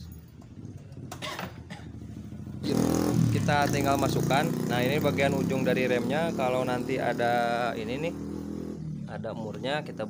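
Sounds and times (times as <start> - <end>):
motorcycle engine running: 0.1 - 10.0.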